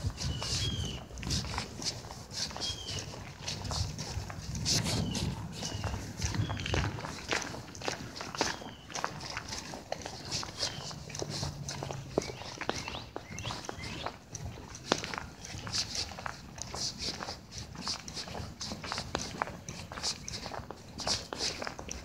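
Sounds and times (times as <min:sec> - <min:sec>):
footsteps on asphalt: 0:00.0 - 0:22.0.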